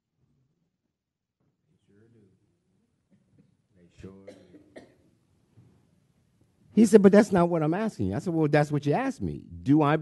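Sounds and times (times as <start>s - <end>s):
person coughing: 4.2s - 5.1s.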